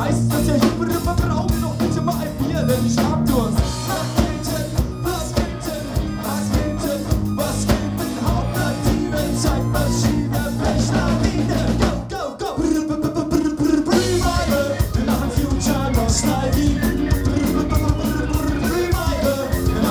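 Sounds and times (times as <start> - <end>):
person singing: 0.0 - 19.9
punk rock band playing: 0.0 - 19.9.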